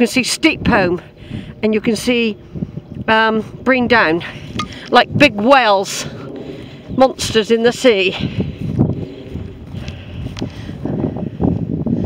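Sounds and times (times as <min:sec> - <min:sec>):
wind noise on microphone: 0:00.0 - 0:12.0
footsteps walking: 0:08.2 - 0:10.7.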